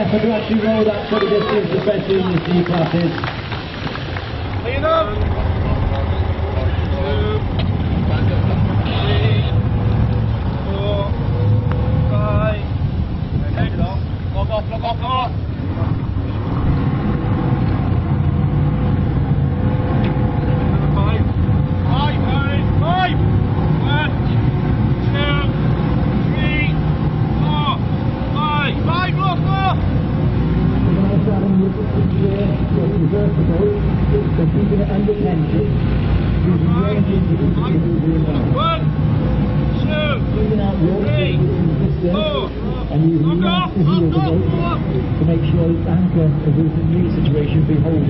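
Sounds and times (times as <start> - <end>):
propeller churning water: 0.0 - 48.0.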